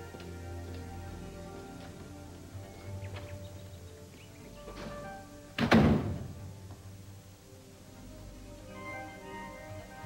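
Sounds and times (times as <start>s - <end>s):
quiet background music: 0.0s - 10.0s
door shutting heavily: 4.7s - 6.4s.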